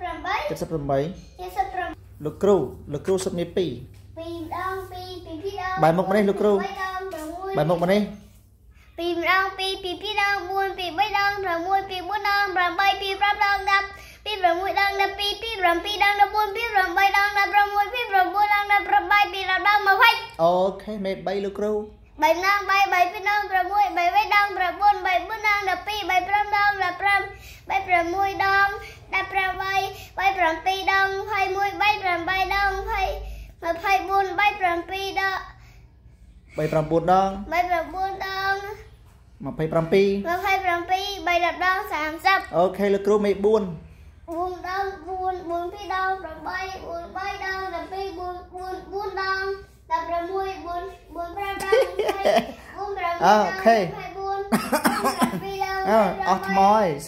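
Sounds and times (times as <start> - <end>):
child chanting in sing-song: 4.1 - 35.6, 36.6 - 57.0.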